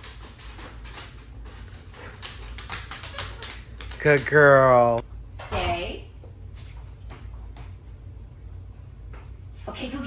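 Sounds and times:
dog claws clicking on wood floor: 0:00.0 - 0:04.9.

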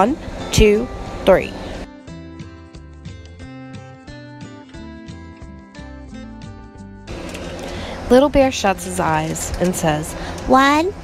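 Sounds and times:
steady noisy hiss: 0:00.0 - 0:01.9
plucked acoustic guitar music: 0:00.5 - 0:10.8.

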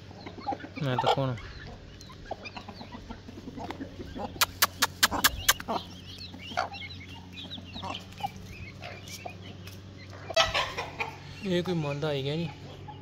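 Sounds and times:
hen and chicks clucking: 0:00.0 - 0:13.0.

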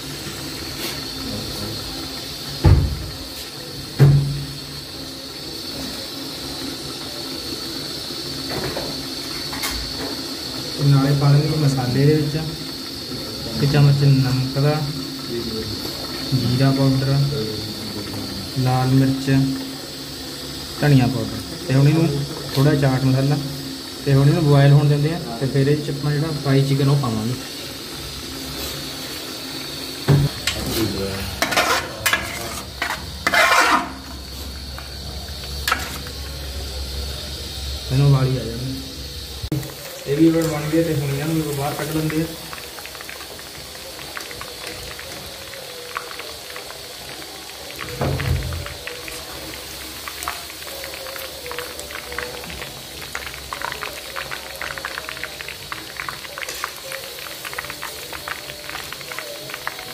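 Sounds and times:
chicken deep-frying in oil: 0:00.0 - 0:59.9
hiss from steaming pot: 0:00.0 - 0:59.9
low thump: 0:02.6 - 0:03.1
ladle scraping a metal pot: 0:31.4 - 0:34.1.

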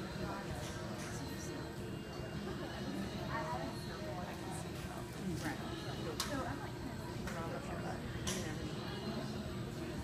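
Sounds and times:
people talking in background: 0:00.0 - 0:10.0.

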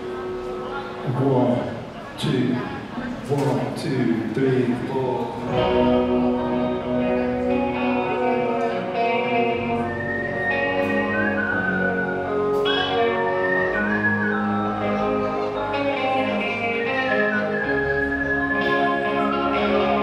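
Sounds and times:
rock band playing slowly: 0:05.3 - 0:20.0
sliding lead melody: 0:05.5 - 0:20.0.

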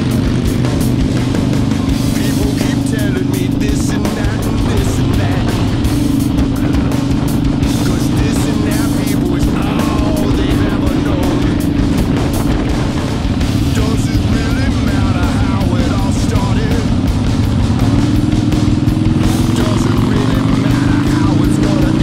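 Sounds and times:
motorcycle engine running: 0:00.0 - 0:22.0
music: 0:00.0 - 0:22.0
wind buffeting microphone: 0:00.0 - 0:22.0.

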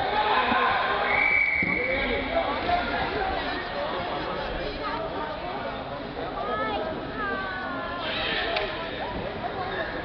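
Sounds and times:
background chatter of voices: 0:00.0 - 0:10.0.

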